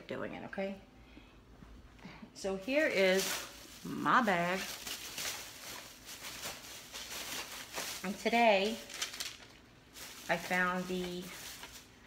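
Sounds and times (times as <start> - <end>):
plastic bag rustling: 2.6 - 12.0.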